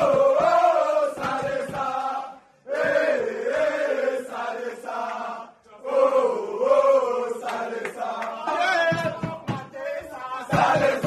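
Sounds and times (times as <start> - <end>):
hand claps: 0.0 - 2.0, 7.4 - 11.0
men chanting in unison: 0.0 - 11.0.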